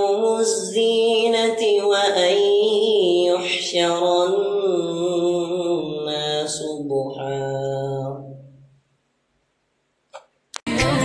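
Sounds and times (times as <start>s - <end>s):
man chanting melodically: 0.0s - 8.7s.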